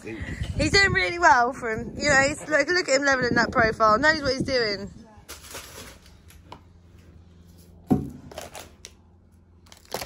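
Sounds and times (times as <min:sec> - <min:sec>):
snack packaging crackling: 0:08.3 - 0:10.0.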